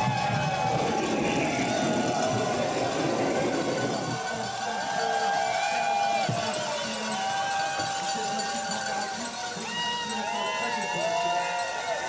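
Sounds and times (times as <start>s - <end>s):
crowd shouting: 0.0s - 12.0s
sled runners rumbling over ice: 0.0s - 12.0s.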